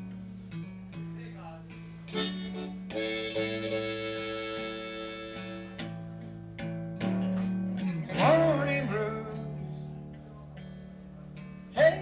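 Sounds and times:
electric guitar bass line: 0:00.0 - 0:01.2, 0:01.8 - 0:12.0
harmonica holding a chord: 0:02.1 - 0:06.1.

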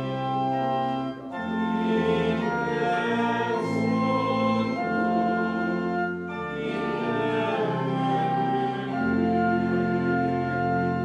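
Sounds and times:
hymn singing: 0:00.0 - 0:11.0
organ playing held chords: 0:00.0 - 0:11.0.

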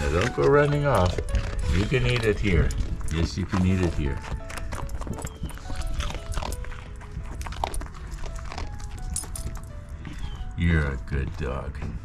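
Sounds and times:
dog crunching a cookie: 0:00.0 - 0:12.0
soft background music: 0:00.0 - 0:12.0.

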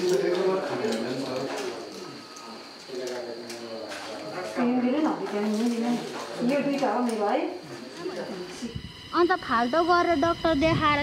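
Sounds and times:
quiet talk: 0:00.0 - 0:11.0.

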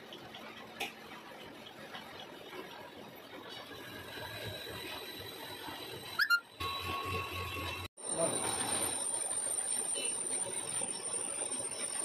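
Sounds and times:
high squeal rising in pitch: 0:06.2 - 0:06.5.

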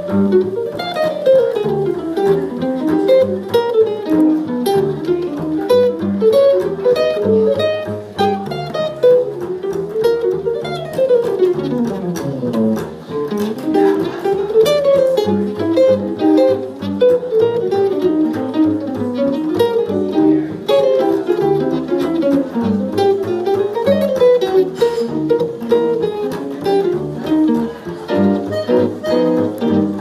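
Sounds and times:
jazz guitar solo: 0:00.0 - 0:30.0.

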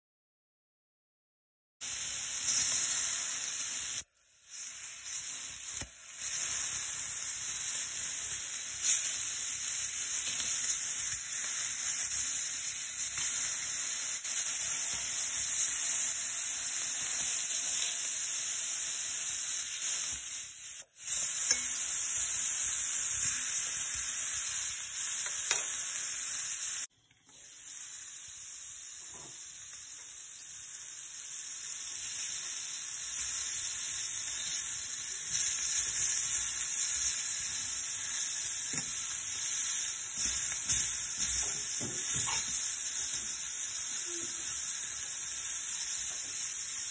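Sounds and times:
ribs sizzling in a pan: 0:01.8 - 0:46.9.

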